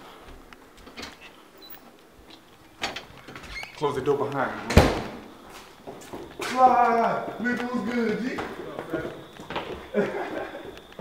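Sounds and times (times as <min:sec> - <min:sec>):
faint footsteps: 0:00.0 - 0:11.0.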